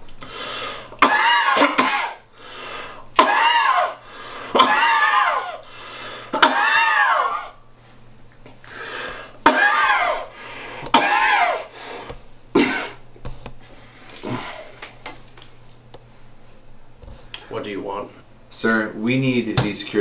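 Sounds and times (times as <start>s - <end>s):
man coughing: 1.0s - 2.2s, 3.2s - 5.6s, 6.3s - 7.6s, 9.4s - 10.3s, 10.9s - 11.7s, 12.5s - 13.0s.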